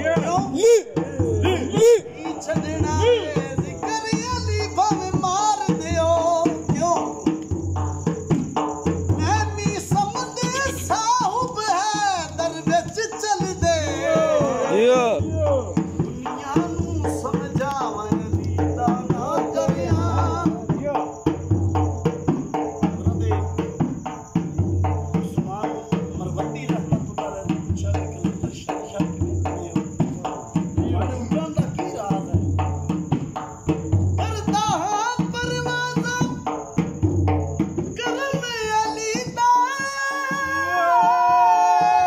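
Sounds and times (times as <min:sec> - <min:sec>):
man singing: 0:00.0 - 0:07.4, 0:09.1 - 0:21.5, 0:34.2 - 0:37.0, 0:37.8 - 0:42.0
barrel drum beating: 0:00.0 - 0:42.0
crickets chirring: 0:00.0 - 0:42.0
person singing: 0:38.0 - 0:42.0.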